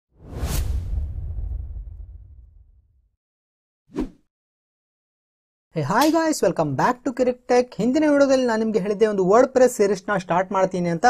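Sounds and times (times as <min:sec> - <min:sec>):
whoosh sound effect: 0:00.2 - 0:02.8
deep rumbling boom: 0:00.4 - 0:03.1.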